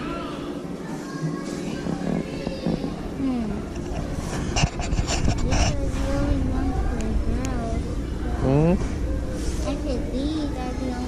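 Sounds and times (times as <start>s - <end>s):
faint background voices: 0.0s - 11.0s
rubbing and rustling on microphone: 1.5s - 3.0s, 3.7s - 6.5s.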